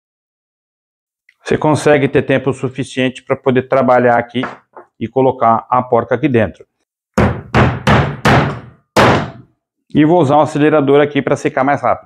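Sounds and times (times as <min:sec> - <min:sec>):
hammer striking metal nut: 0:07.2 - 0:09.5.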